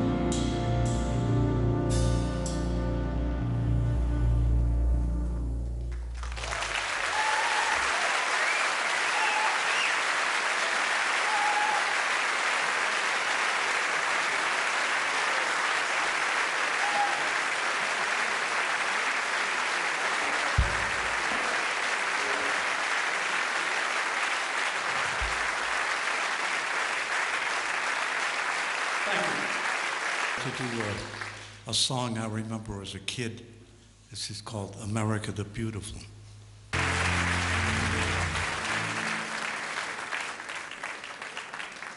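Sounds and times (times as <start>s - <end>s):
audience applauding: 5.8s - 31.6s, 36.8s - 41.9s
short calls from audience: 6.5s - 12.3s, 16.6s - 18.0s
low thump: 20.6s - 21.4s, 25.2s - 25.6s.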